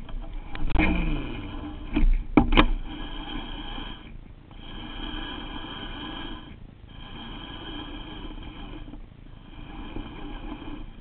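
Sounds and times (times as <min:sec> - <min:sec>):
fishing reel gears whirring: 0:00.0 - 0:11.0.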